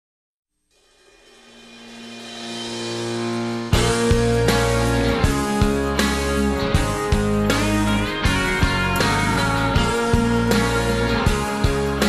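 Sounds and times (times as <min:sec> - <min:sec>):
cymbal-like wash: 0:00.7 - 0:05.6
background music with sustained notes: 0:01.0 - 0:12.0.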